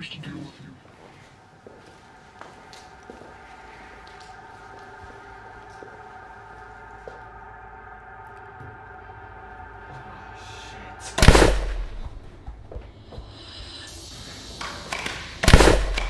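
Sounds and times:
drone of held tones: 0:01.1 - 0:16.0.

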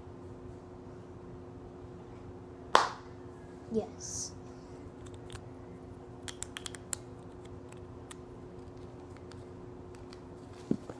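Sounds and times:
steady low hum: 0:00.0 - 0:10.9.

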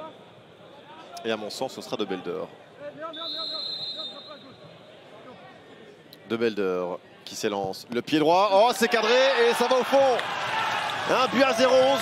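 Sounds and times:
pea whistle blown: 0:03.2 - 0:04.4.

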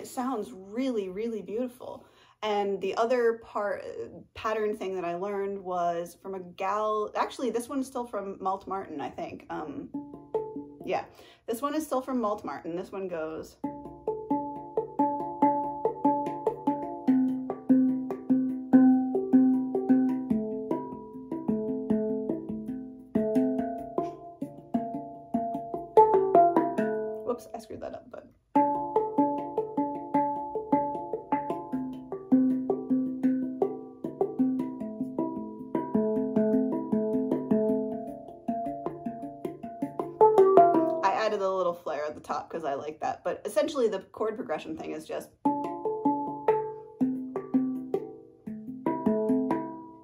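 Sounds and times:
handpan playing: 0:09.9 - 0:10.9, 0:13.6 - 0:27.3, 0:28.5 - 0:41.2, 0:45.4 - 0:50.0.

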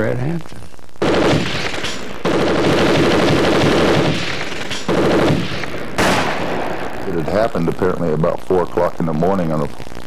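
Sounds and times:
automatic gunfire bursts: 0:01.0 - 0:06.8.

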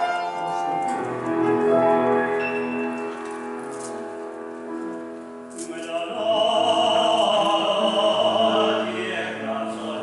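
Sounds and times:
grand piano playing slowly: 0:00.0 - 0:10.0.

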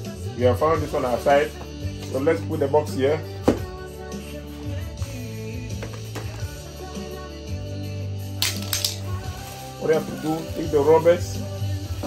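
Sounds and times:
background music with bass line: 0:00.0 - 0:12.0
plastic bag crinkling: 0:08.5 - 0:10.8.

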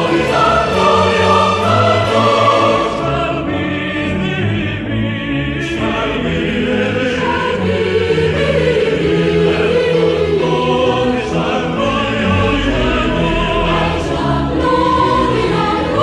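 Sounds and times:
choir singing held notes: 0:00.0 - 0:16.0
instrumental accompaniment: 0:00.0 - 0:16.0.

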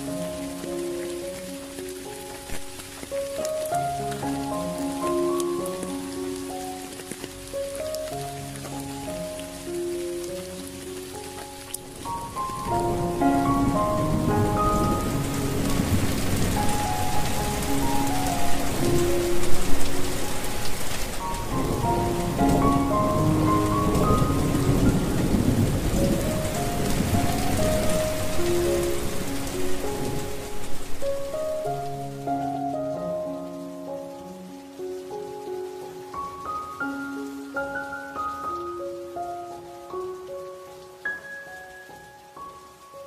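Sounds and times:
hiss of falling water: 0:00.0 - 0:43.0
soft music with sustained notes: 0:00.0 - 0:43.0.

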